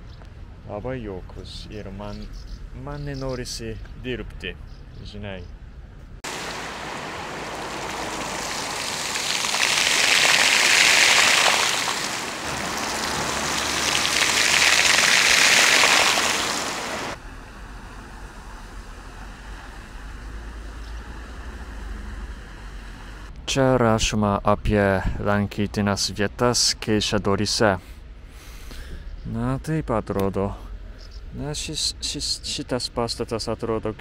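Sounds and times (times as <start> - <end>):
fountain splashing into basin: 6.3 - 17.2.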